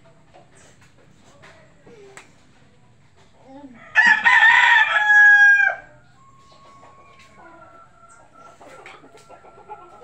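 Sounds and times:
rooster crowing: 3.8s - 8.4s.

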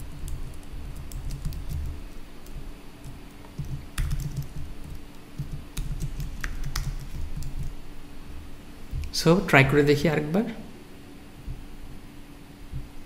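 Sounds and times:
typing on computer keyboard: 0.0s - 7.8s
faint steady hum: 0.0s - 13.0s.

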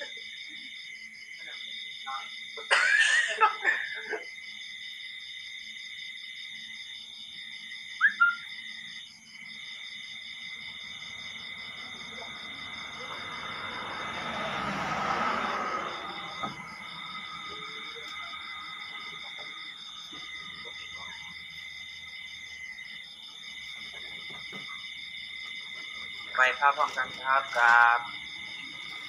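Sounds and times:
night insects trilling: 0.0s - 29.0s
rustling noise: 23.5s - 27.9s.

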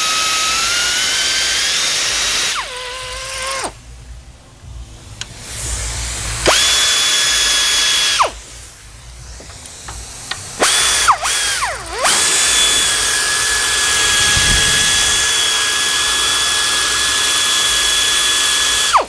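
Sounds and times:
electric ratchet whining: 0.0s - 3.8s, 5.2s - 19.0s.

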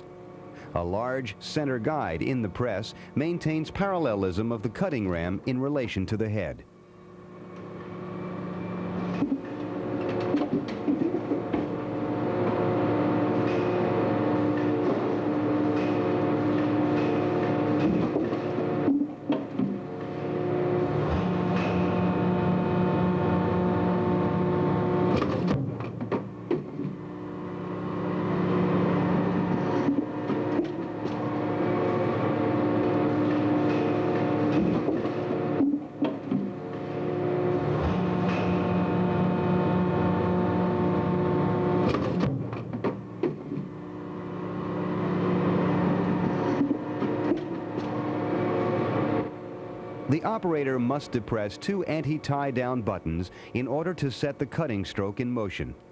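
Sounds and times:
hydraulic press humming: 6.6s - 55.1s.

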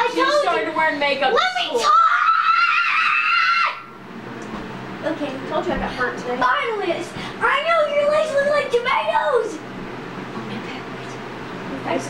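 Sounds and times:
girl screaming: 1.7s - 3.9s.

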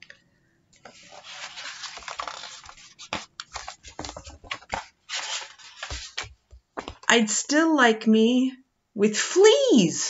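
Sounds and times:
book page rustling: 0.8s - 7.1s.

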